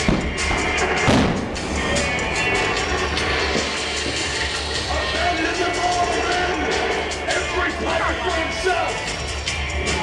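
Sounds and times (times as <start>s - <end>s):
fireball explosion: 0.0s - 4.4s
loud music: 0.0s - 10.0s.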